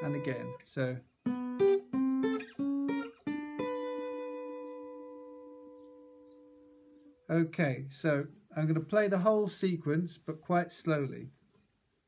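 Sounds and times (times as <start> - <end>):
acoustic guitar riff: 0.0 - 7.5.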